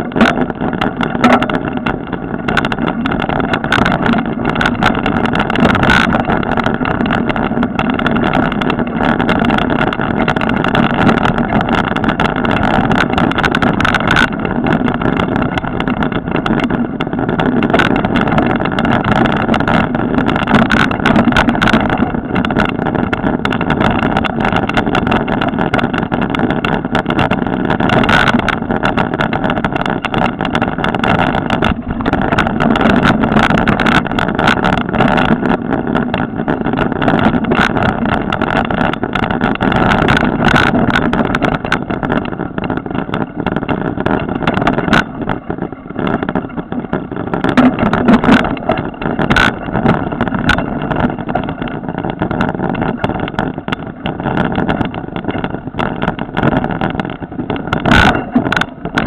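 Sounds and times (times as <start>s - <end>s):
bike knocking over bumps: 0.0s - 59.0s
camera rattling: 0.0s - 59.0s
wind on microphone: 0.0s - 59.0s.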